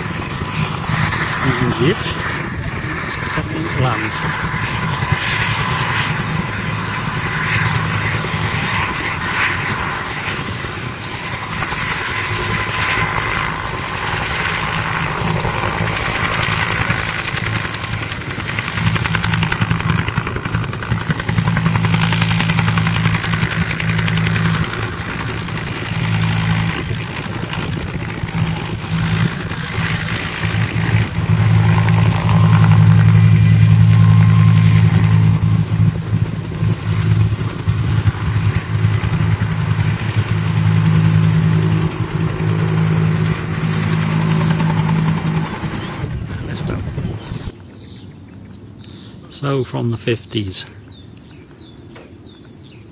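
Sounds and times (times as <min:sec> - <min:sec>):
helicopter flying low: 0:00.0 - 0:52.9.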